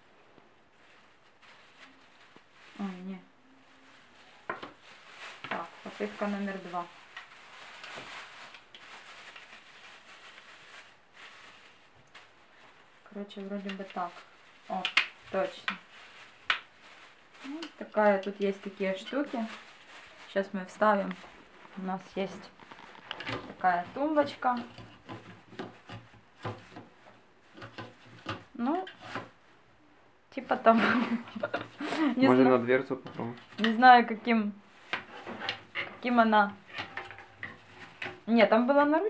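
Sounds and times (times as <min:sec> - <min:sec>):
plastic bag rustling: 0:00.2 - 0:29.6, 0:30.5 - 0:39.0
plastic rubbing against door: 0:18.7 - 0:29.4.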